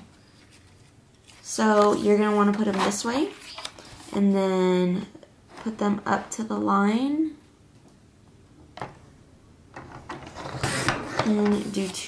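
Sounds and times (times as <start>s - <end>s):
paper trimmer blade cutting paper: 10.5s - 12.0s.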